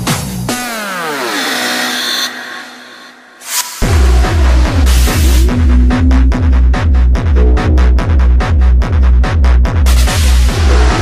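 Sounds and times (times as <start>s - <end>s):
background music: 0.0s - 11.0s
buzzy tone gliding down: 4.8s - 8.9s.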